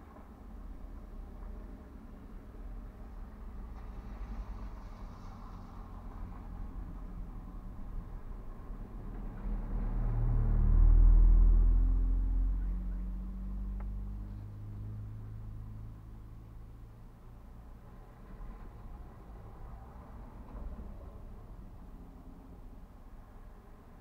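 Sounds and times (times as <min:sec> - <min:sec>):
vehicle engine passing: 0:08.6 - 0:16.9.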